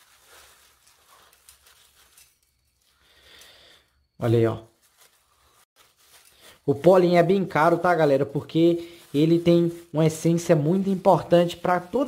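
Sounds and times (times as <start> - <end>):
plastic bag rustling: 0.0 - 3.0, 4.7 - 12.0.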